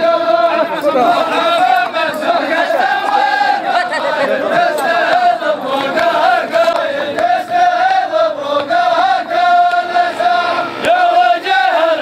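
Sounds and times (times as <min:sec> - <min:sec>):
men chanting in unison: 0:00.0 - 0:12.0.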